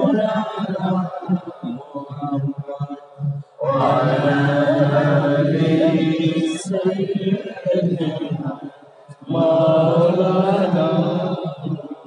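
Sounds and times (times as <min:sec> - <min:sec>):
man chanting devotional song: 0:00.0 - 0:12.0.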